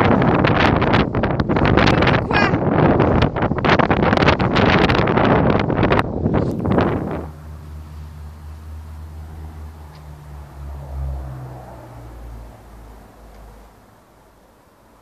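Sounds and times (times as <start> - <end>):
distant engine hum: 0.0 - 15.0
wind buffeting microphone: 0.0 - 15.0.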